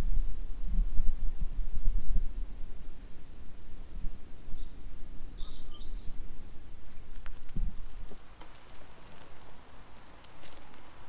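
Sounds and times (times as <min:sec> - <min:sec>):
wind rumble on microphone: 0:00.0 - 0:11.0
bird chirping: 0:03.8 - 0:06.2.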